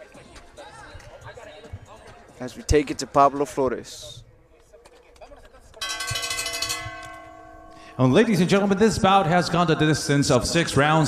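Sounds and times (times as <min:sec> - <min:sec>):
boxing ring bell ringing: 0:05.8 - 0:09.1.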